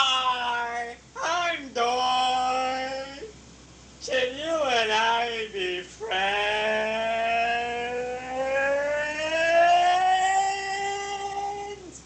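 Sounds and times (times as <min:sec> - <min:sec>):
voice holding long note: 0:06.0 - 0:11.9.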